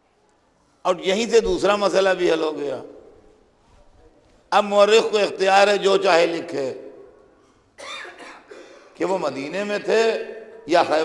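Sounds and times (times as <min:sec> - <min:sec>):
man coughing: 0:07.8 - 0:09.0.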